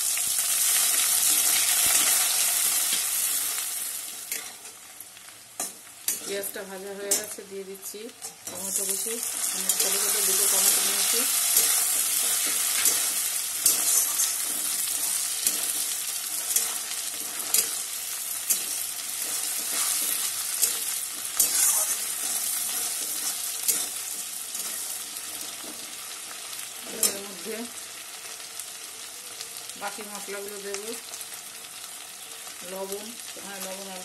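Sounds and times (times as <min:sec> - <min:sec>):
food sizzling in hot oil: 0:00.0 - 0:34.0
metal spatula scraping pan: 0:08.2 - 0:25.8.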